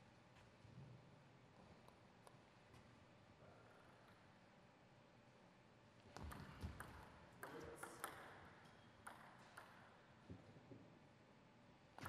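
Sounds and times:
table tennis ball clicks: 9.0 - 9.8.

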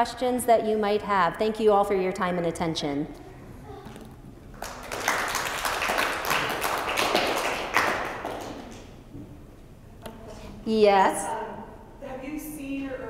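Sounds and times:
audience applauding: 4.5 - 8.9.

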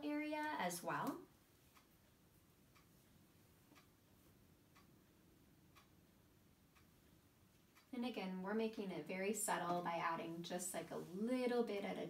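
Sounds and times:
faint regular ticks: 0.4 - 12.0.

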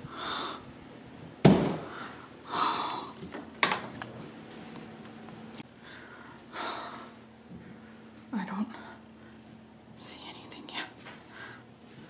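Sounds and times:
person whispering: 10.0 - 11.0.

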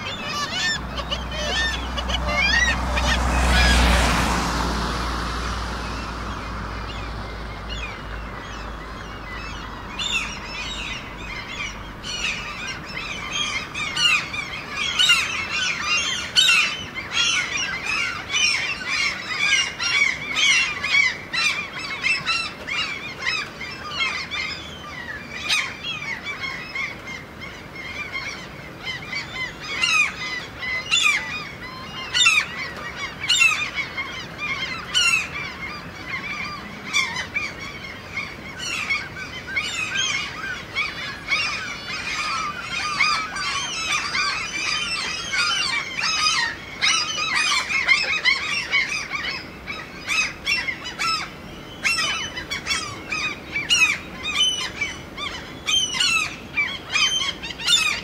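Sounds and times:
chorus of birds calling: 0.0 - 58.0.

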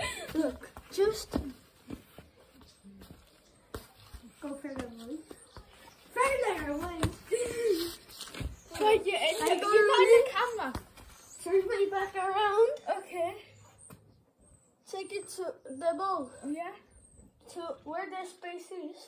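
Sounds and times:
boys laughing and calling: 0.0 - 1.4, 5.6 - 13.6.

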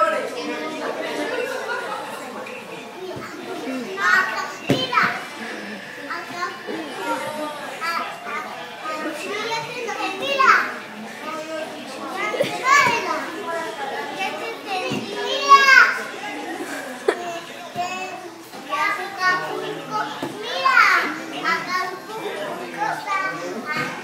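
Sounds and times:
young children talking: 0.0 - 24.0.

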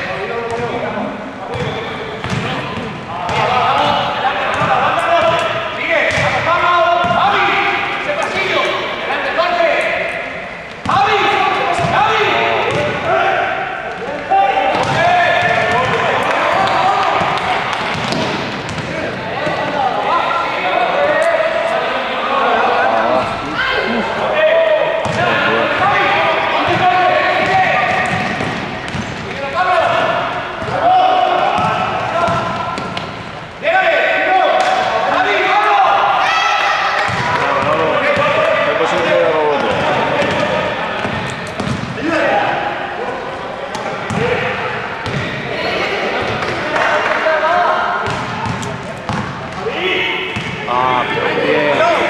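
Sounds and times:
players calling out: 0.0 - 52.0
basketball bouncing on court: 1.5 - 5.5, 6.1 - 7.2, 14.7 - 19.6, 25.0 - 25.9, 26.6 - 29.3, 31.5 - 33.2, 37.0 - 42.0, 44.0 - 44.4, 45.0 - 45.4, 48.0 - 49.6.

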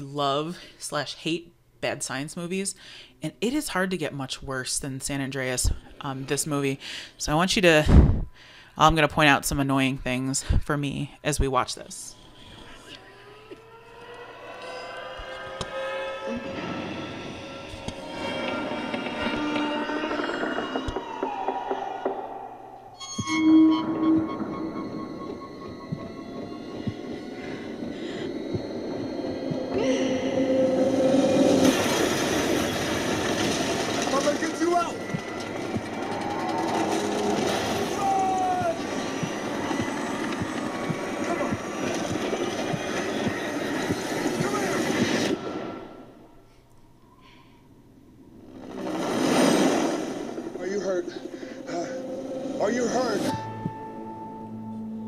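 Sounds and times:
trailer music: 13.1 - 46.3, 48.4 - 55.0
buildings crashing and rumbling: 30.5 - 45.8.

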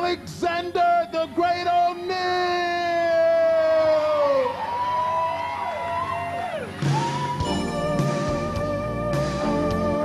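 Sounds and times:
bass: 0.0 - 10.0
live band music: 6.8 - 10.0.

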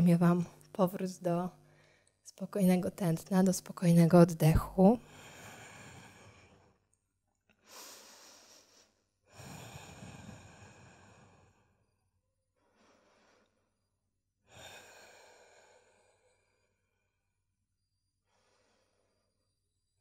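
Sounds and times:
woman breathing slowly: 1.6 - 2.2, 5.0 - 7.0, 7.6 - 20.0.

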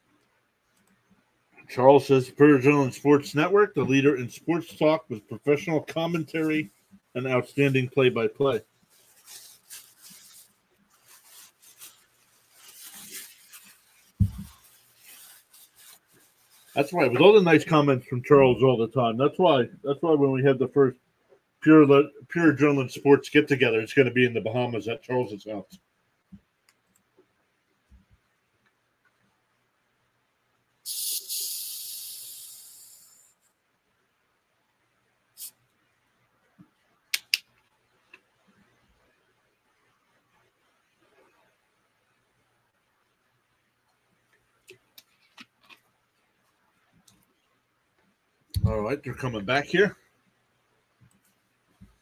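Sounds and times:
faint rustling and rubbing: 0.0 - 18.7, 37.6 - 50.2
sharp high hiss: 30.8 - 33.5.

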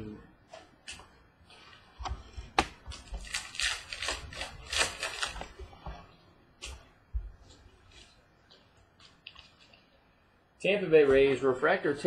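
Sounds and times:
trading cards rustling: 2.3 - 5.8.

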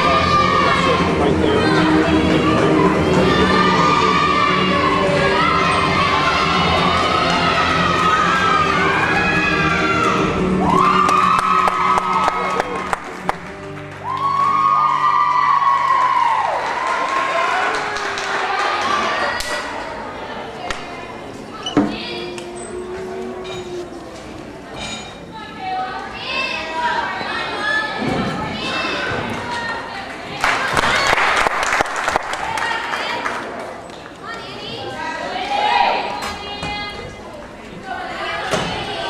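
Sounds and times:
long drawn-out shouts: 0.0 - 12.6, 14.0 - 20.6
music: 0.0 - 19.9, 21.2 - 25.3
crowd cheering and calling out: 0.0 - 31.6.

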